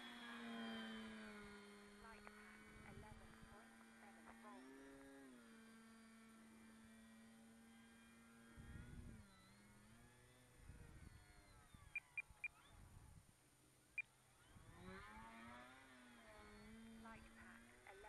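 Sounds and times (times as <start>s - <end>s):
model plane electric motor humming: 0.0s - 18.0s.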